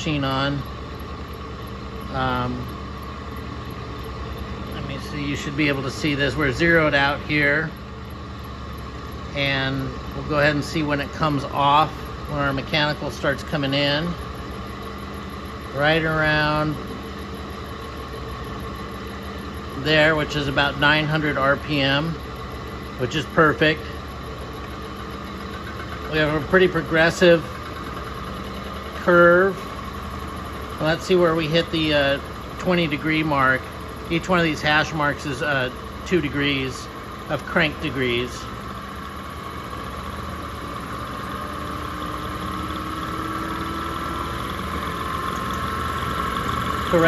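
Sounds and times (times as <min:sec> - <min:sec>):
electric motor humming: 0:00.0 - 0:47.0.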